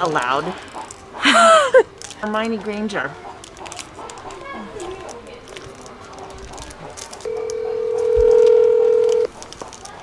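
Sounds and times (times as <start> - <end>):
phone ringback tone: 7.3 - 9.3.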